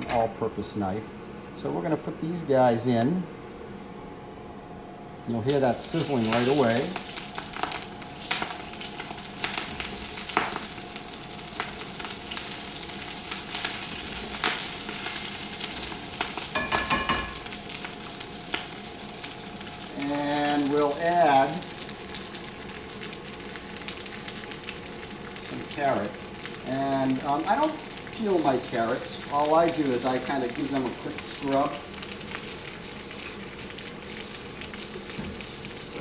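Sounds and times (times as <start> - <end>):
vegetables sizzling in oil: 5.5 - 36.0
metallic ring of wok: 16.5 - 17.6.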